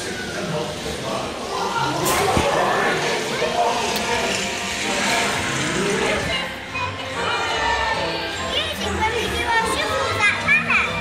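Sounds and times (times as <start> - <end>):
amusement ride background music: 0.0 - 11.0
voices: 0.0 - 11.0.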